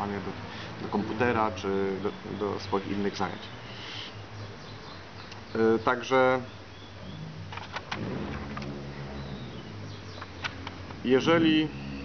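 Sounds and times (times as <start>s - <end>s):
low engine hum: 6.6s - 12.0s.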